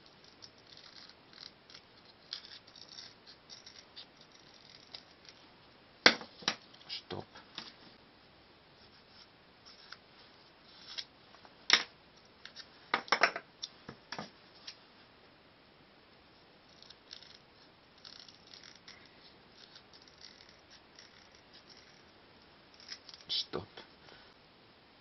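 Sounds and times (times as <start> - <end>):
small workshop pieces knocking: 12.9 - 13.4.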